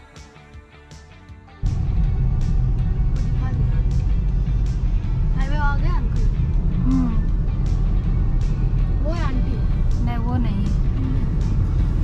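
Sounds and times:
background music: 0.0 - 12.0
car rumble from inside cabin: 1.6 - 12.0.

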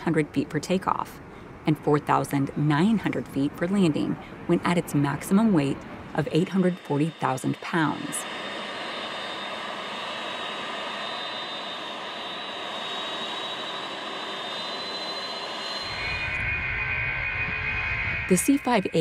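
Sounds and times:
jet engines rushing and whining: 0.0 - 19.0
deep jet engine rumble: 2.4 - 19.0.

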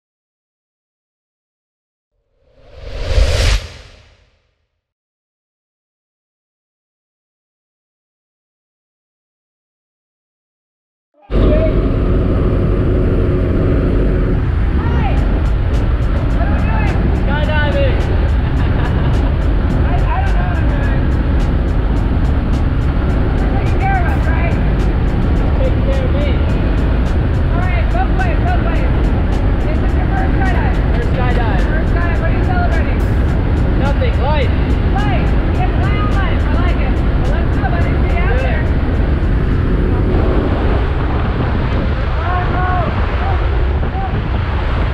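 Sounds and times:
propeller plane engine drone: 11.3 - 42.2.

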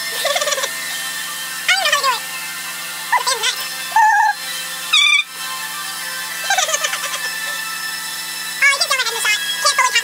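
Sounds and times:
steady humming background: 0.0 - 10.0
woman squealing and humming: 3.9 - 5.3.

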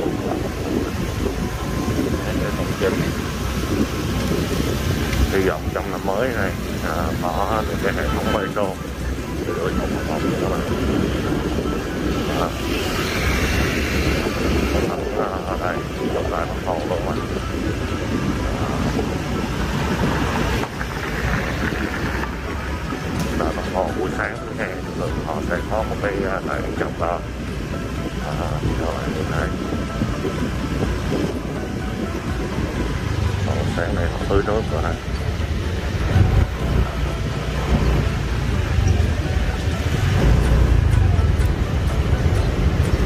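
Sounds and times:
city traffic rumble: 0.0 - 43.0
wind buffeting microphone: 0.0 - 43.0
faint voices: 5.3 - 20.0.

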